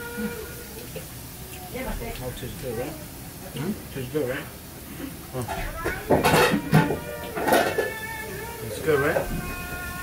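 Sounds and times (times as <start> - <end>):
dishes clattering: 5.4 - 8.2.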